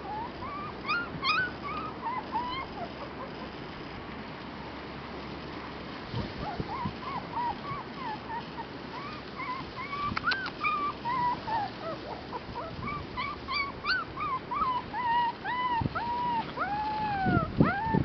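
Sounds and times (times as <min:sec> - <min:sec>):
puppy whimpering: 0:00.0 - 0:03.6, 0:06.2 - 0:18.0.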